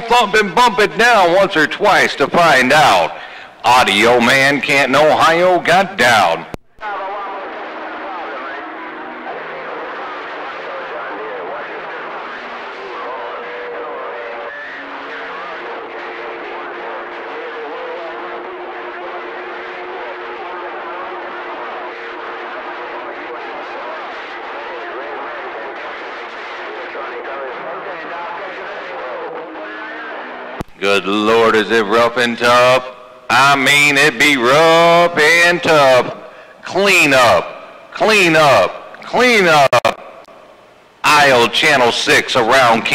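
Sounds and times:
garbled overlapping radio voices: 0:00.0 - 0:42.9
radio static: 0:03.7 - 0:32.7.

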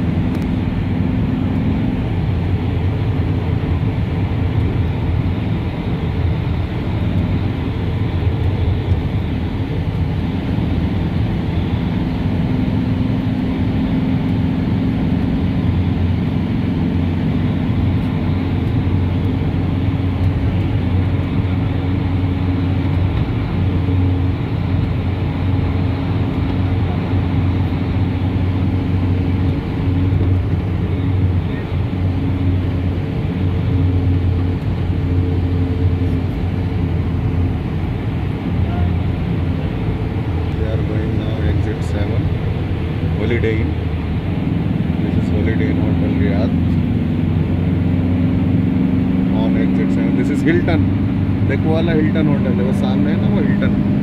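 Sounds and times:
vehicle engine and road noise: 0:00.0 - 0:54.0.

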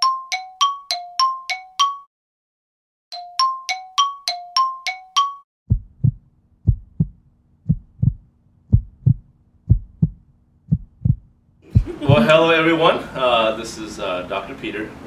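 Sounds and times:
heartbeat thumps: 0:05.7 - 0:12.3.

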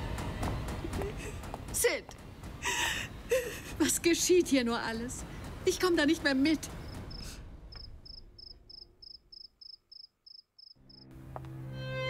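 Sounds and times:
cricket chirping: 0:06.7 - 0:11.1.

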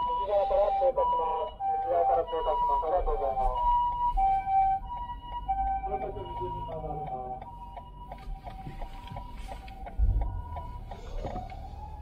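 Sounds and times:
two-tone ambulance siren: 0:00.0 - 0:12.0.

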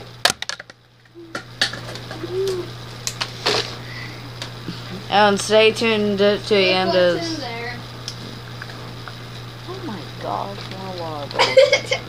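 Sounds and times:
low hum-like tones: 0:00.8 - 0:12.0.

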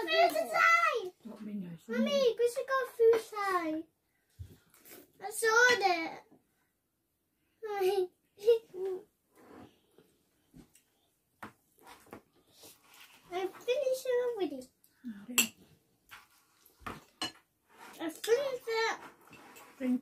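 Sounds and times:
child's voice: 0:00.0 - 0:01.2, 0:01.9 - 0:03.9, 0:05.2 - 0:06.3, 0:07.6 - 0:09.1, 0:13.3 - 0:14.8, 0:18.0 - 0:19.0.

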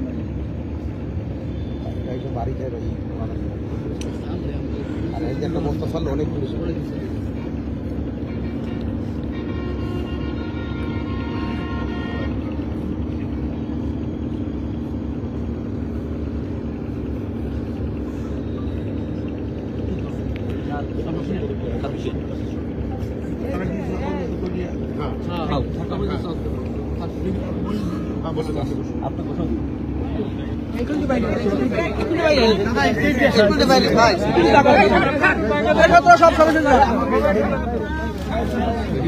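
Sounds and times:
engine humming: 0:00.0 - 0:39.0
voices: 0:00.0 - 0:39.0.

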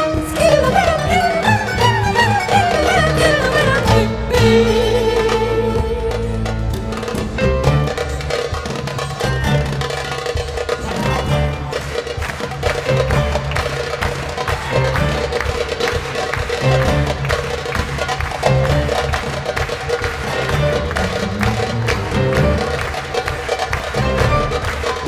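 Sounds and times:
busy percussion pattern: 0:00.0 - 0:25.0.

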